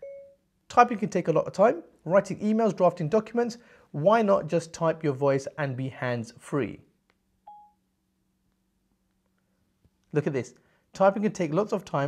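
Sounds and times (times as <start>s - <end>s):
short electronic beep: 0.0s - 0.4s, 7.5s - 7.8s.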